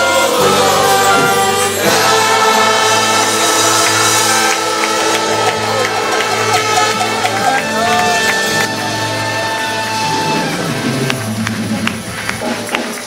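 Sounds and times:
congregation singing: 0.0 - 11.5
instrumental backing: 0.0 - 13.0.

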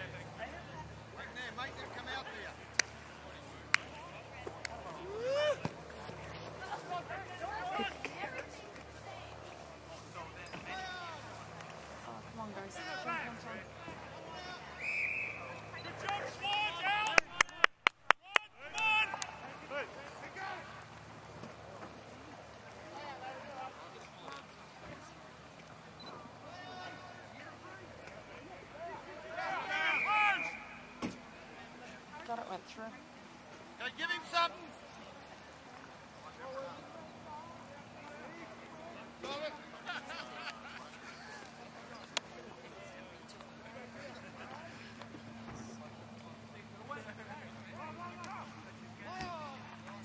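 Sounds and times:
people calling out: 4.8 - 5.8, 12.2 - 20.8, 28.6 - 31.0.

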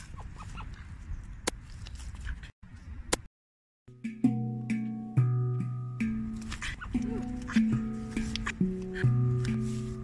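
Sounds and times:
slow handpan music: 3.9 - 10.0.

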